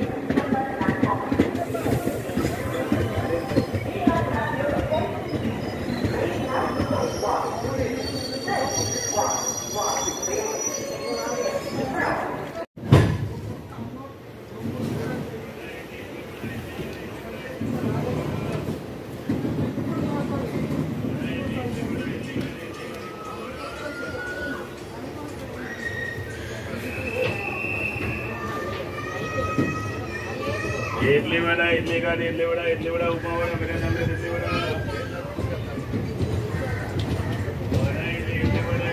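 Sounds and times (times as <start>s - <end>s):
train rumbling slowly: 0.0s - 12.6s, 13.3s - 38.9s
people's voices: 0.0s - 12.7s, 13.3s - 38.9s
high wheel squeal: 5.3s - 12.3s
thump: 12.8s - 13.3s
passing train rumble: 27.6s - 38.9s.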